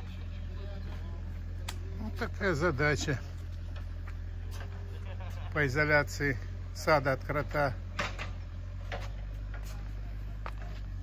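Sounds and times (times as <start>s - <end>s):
diesel engine rumbling: 0.0s - 11.0s
faint voices: 0.0s - 11.0s.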